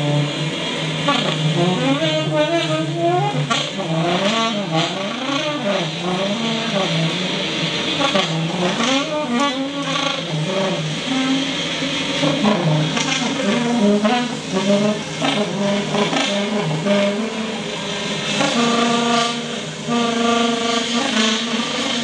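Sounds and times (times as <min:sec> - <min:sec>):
electronically processed alto saxophone: 0:00.0 - 0:22.0.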